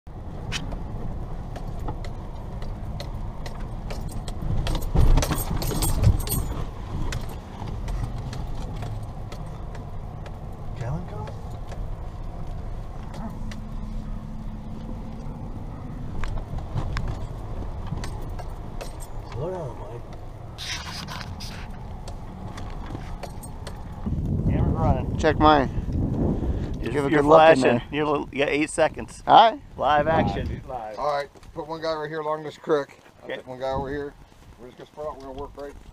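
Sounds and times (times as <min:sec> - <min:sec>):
engine and tyres rumbling: 0:00.1 - 0:35.9
car rattling and knocking: 0:00.6 - 0:13.7, 0:16.0 - 0:20.3, 0:22.0 - 0:24.2.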